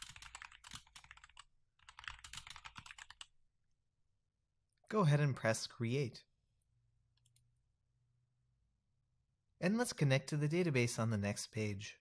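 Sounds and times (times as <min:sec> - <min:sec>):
typing on computer keyboard: 0:00.0 - 0:03.3.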